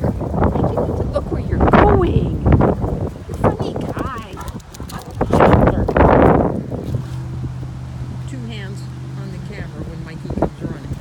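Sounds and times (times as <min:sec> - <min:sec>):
dog footfalls running: 0:02.6 - 0:06.0.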